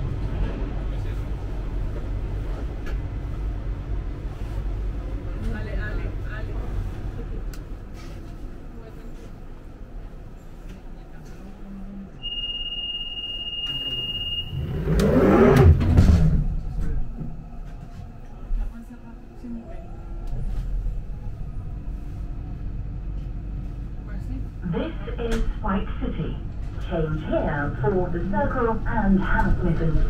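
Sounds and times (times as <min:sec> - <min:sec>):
train low hum: 0:00.0 - 0:30.0
recorded train announcement: 0:10.9 - 0:14.5, 0:24.0 - 0:30.0
steady high beep: 0:12.2 - 0:14.8
train doors closing: 0:12.2 - 0:21.1.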